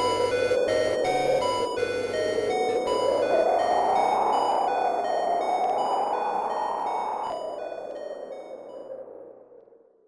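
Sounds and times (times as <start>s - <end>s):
sustained electronic tone: 0.0s - 7.8s.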